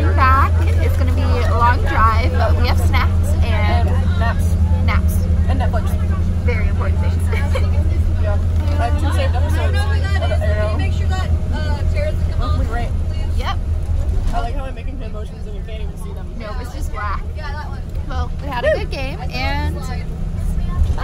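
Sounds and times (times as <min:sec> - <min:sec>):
bus engine drone: 0:00.0 - 0:21.0
passengers chattering: 0:00.0 - 0:21.0.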